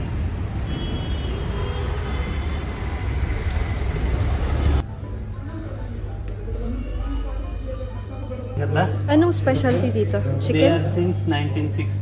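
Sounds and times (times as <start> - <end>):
road traffic rumble: 0.0 - 6.6.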